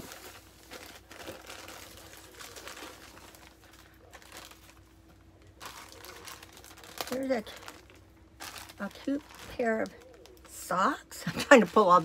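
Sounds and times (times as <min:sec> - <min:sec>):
faint steady hum: 0:00.0 - 0:12.0
packaging crinkling and rustling: 0:00.0 - 0:12.0.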